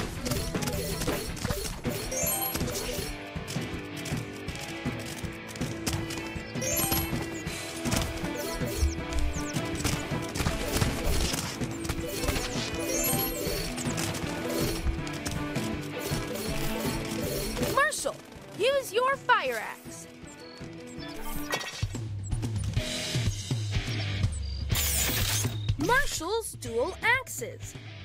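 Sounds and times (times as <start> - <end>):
video game music: 0.0 - 28.0
game pickup sounds and knocks: 2.0 - 4.2, 5.0 - 8.4, 11.9 - 15.5
high-pitched chimes: 2.1 - 3.0, 6.6 - 7.4, 12.8 - 13.7.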